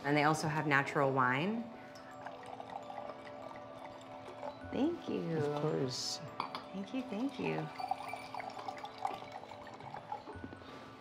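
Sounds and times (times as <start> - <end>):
liquid trickling into glass: 1.6 - 11.0.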